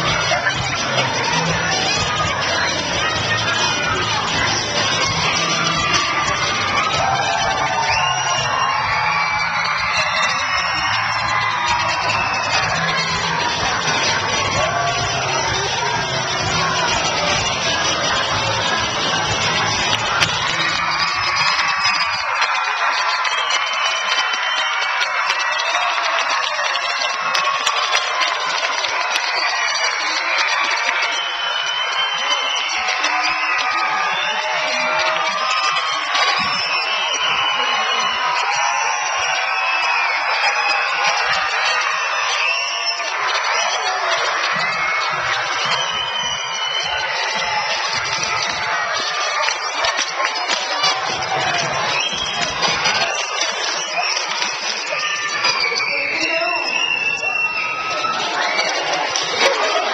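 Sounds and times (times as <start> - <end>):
children cheering and shouting: 0.0 - 59.9.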